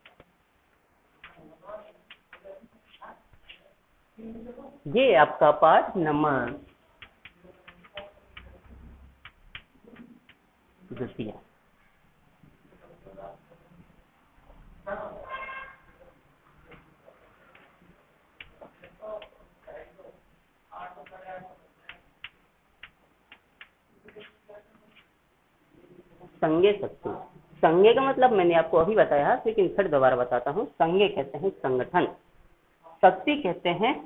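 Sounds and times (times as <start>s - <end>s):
chalk tapping on blackboard: 1.2s - 3.6s, 6.4s - 10.5s.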